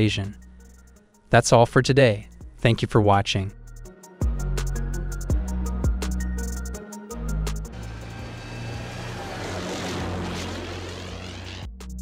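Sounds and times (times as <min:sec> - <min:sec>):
tracked vehicle engine rushing: 0:07.7 - 0:11.7.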